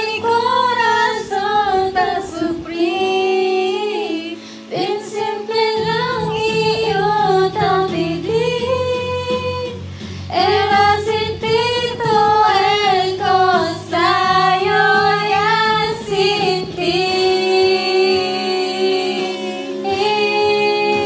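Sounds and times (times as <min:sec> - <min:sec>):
sustained instrumental accompaniment: 0:00.0 - 0:21.0
woman singing into microphone: 0:00.0 - 0:21.0.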